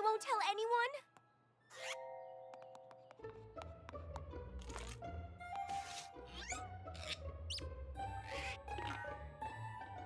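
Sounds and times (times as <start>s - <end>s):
soft background music: 0.0s - 10.0s
cartoon high squeak: 5.7s - 9.1s.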